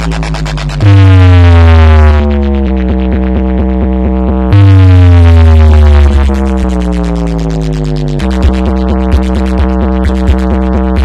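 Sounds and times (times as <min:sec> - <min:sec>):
electronic dance music heavy bass: 0:00.0 - 0:11.0.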